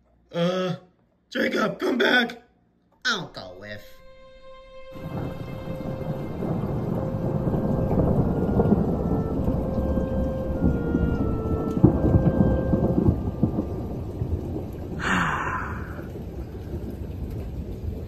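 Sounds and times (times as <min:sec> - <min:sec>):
heavy rain: 0:04.9 - 0:18.0
thunder rumbling and cracking: 0:04.9 - 0:18.0.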